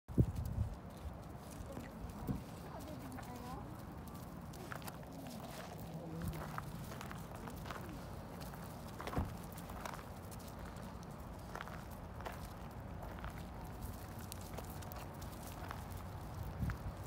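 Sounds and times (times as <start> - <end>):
paws on gravel: 0.1 - 17.0.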